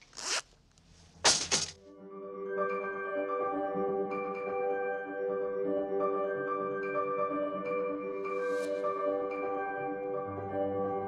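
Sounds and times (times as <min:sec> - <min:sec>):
clothing zipper zipping: 0:00.0 - 0:00.6.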